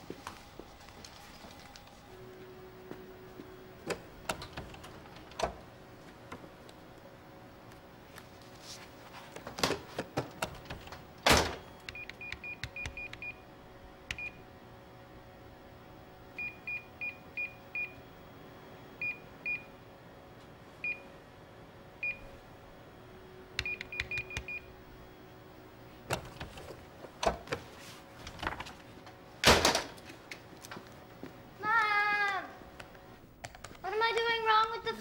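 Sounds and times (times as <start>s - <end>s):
faint hum: 0.0s - 35.0s
keypad beeps: 11.6s - 13.4s, 14.1s - 14.4s, 23.6s - 24.7s.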